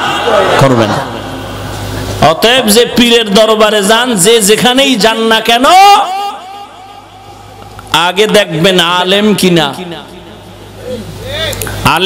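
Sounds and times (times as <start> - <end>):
faint steady hum: 0.0 - 12.0
voice echo through sound system: 0.0 - 12.0
man preaching through loudspeakers: 2.2 - 12.0.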